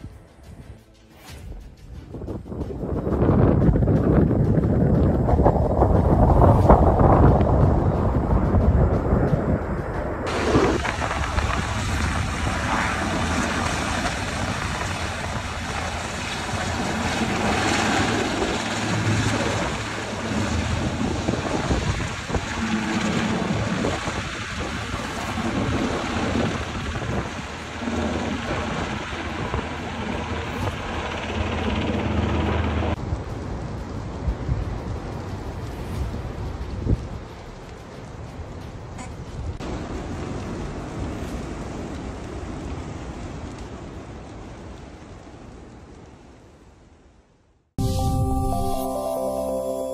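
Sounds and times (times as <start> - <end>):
steady noisy outdoor rumble: 0.0 - 47.2
wind rumbling on microphone: 0.0 - 47.4.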